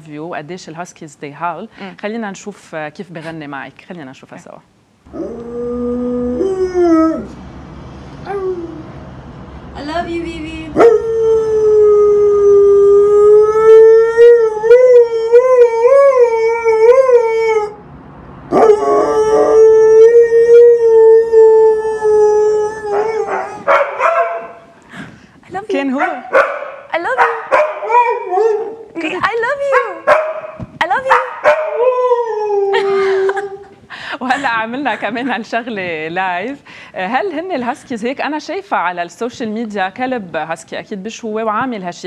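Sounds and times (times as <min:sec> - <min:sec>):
dog howling: 0:05.1 - 0:07.3, 0:18.5 - 0:24.6, 0:27.2 - 0:28.9, 0:29.7 - 0:33.6.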